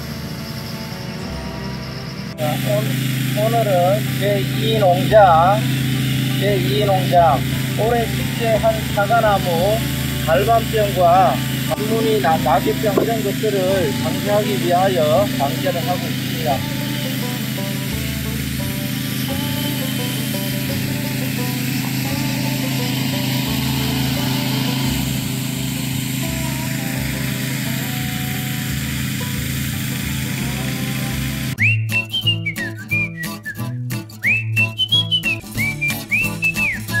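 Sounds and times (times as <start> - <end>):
motor sprayer running: 0.0 - 31.6, 35.0 - 37.0
spray mist hissing: 2.4 - 31.6
whistled tune over a beat: 31.6 - 37.0.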